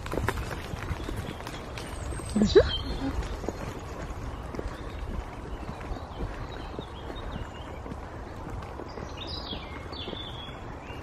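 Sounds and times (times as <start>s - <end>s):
footsteps on pavement: 0.0s - 11.0s.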